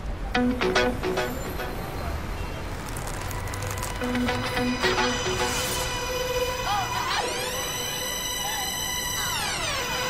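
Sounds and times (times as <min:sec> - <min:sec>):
city street traffic rumble: 0:00.0 - 0:07.2.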